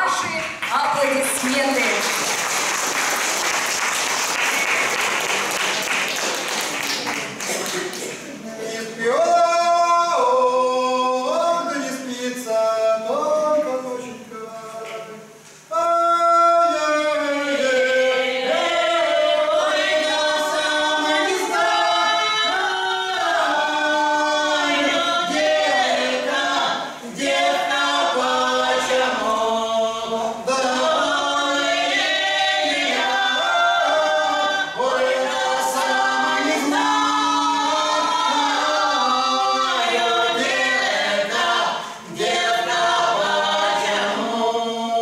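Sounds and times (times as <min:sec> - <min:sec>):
folk song sung a cappella: 0:01.5 - 0:45.0.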